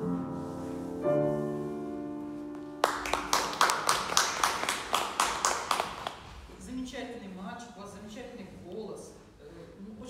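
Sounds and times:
people clapping: 2.6s - 6.3s.

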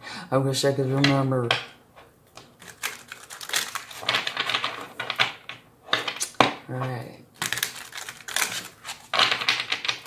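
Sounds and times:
cards being shuffled: 2.4s - 4.9s, 7.4s - 10.0s.

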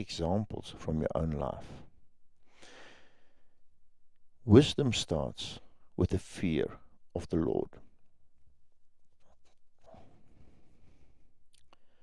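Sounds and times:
faint breath intake: 2.4s - 3.6s.

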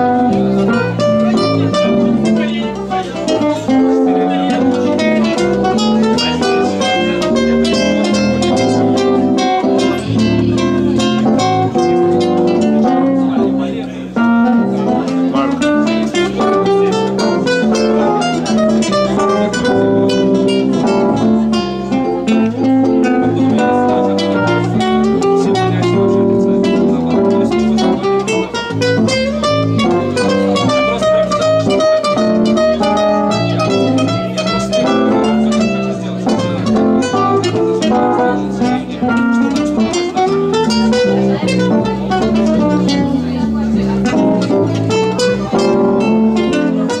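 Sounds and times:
classical guitar plucked notes: 0.0s - 47.0s
sustained electric keyboard: 0.0s - 47.0s.

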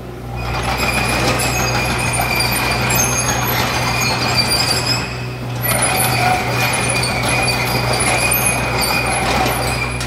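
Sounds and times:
diesel engine running: 0.0s - 10.0s
tracks clattering and squeaking: 0.3s - 10.0s.

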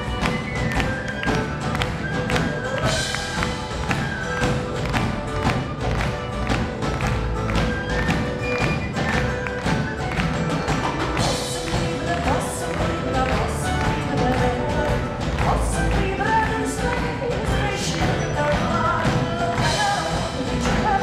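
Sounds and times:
fast percussion beat: 0.0s - 21.0s
folk band playing: 0.0s - 21.0s.

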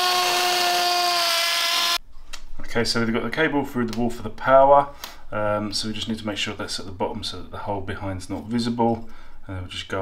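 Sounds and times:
cordless drill boring into wall: 0.0s - 2.0s.

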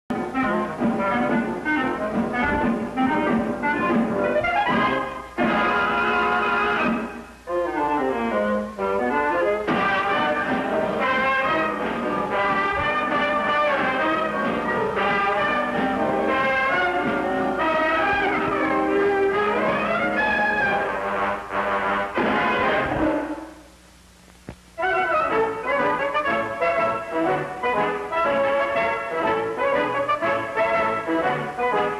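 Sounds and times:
brassy orchestral cartoon music: 0.1s - 23.6s, 24.8s - 31.9s.

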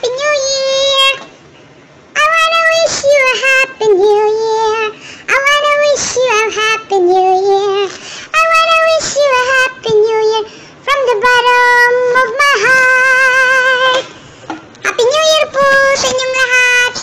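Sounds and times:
high-pitched cartoon cat voice singing: 0.0s - 1.2s, 14.9s - 17.0s.

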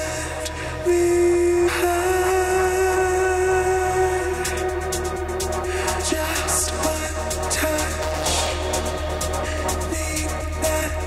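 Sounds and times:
pulsing bass line: 0.0s - 11.0s.

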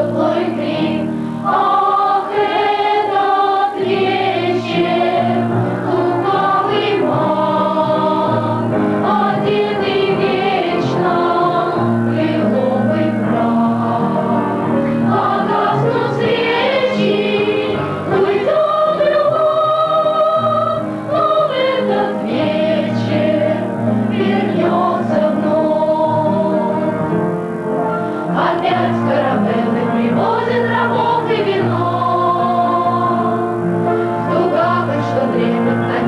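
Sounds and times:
children's choir singing: 0.0s - 36.0s
piano accompaniment: 0.0s - 36.0s.

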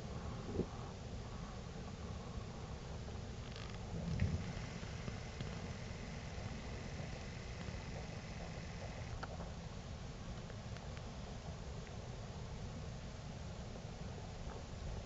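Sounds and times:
thin faint steady tone: 0.0s - 15.0s
low distant rumble: 3.8s - 9.6s.

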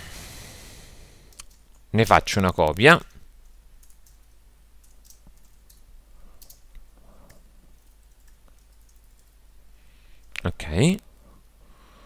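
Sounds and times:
faint keyboard typing: 3.0s - 9.4s.

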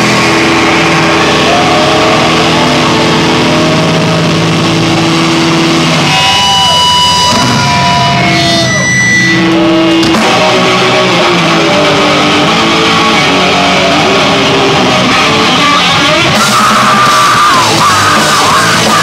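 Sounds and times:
steady high tones: 0.0s - 12.6s
live rock band playing: 0.0s - 19.0s.

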